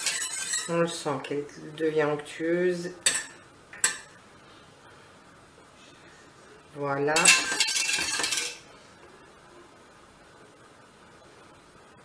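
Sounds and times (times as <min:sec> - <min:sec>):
whisk rattling in metal pot: 0:00.0 - 0:00.8, 0:07.2 - 0:08.6.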